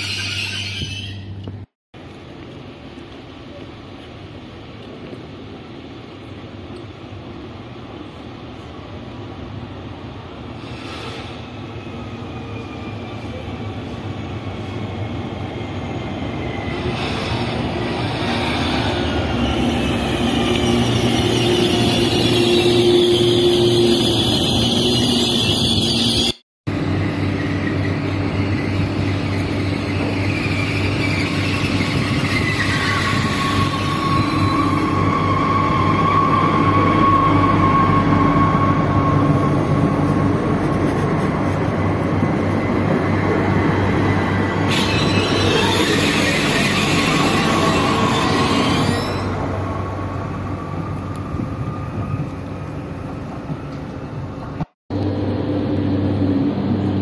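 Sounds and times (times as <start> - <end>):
wheels and brakes squealing: 0.0 - 1.5, 10.6 - 26.4, 27.0 - 49.6
train running in: 2.0 - 57.0.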